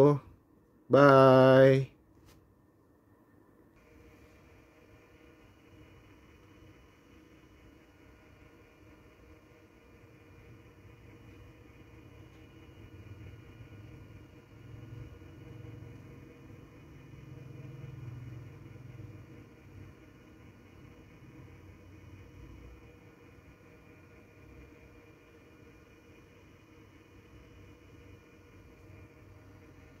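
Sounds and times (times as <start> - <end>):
turntable motor hum: 3.8 - 30.0.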